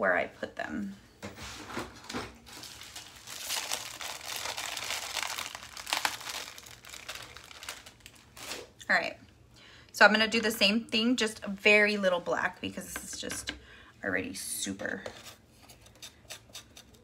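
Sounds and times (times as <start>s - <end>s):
rustling of rummaged supplies: 1.2s - 8.8s.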